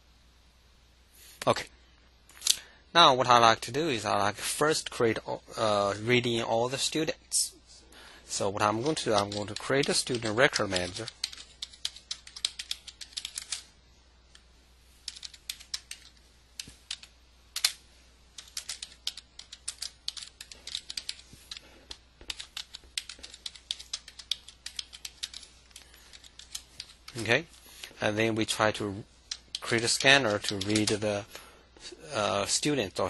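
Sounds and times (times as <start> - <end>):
computer keyboard typing: 8.6 - 13.7, 15.0 - 17.8, 18.4 - 27.3, 29.3 - 31.0.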